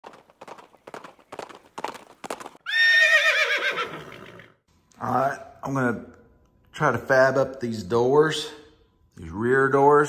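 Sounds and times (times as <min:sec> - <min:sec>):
horse hooves clip-clopping: 0:00.0 - 0:02.8
horse whinnying: 0:02.6 - 0:04.6.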